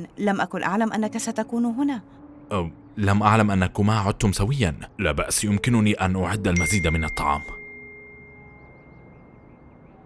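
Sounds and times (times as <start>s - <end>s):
high bell-like chime: 6.6s - 9.9s.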